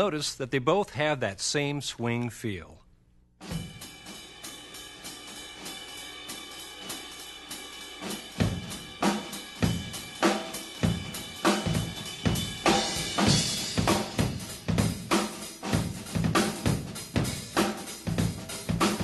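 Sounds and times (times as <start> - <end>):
bass drum and snare hits: 3.4 - 3.8, 9.6 - 19.0
ride cymbal pattern: 3.5 - 19.0.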